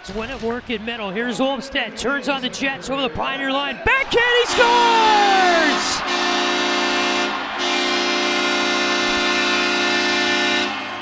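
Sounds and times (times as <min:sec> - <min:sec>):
arena goal horn blast: 0:04.6 - 0:11.0.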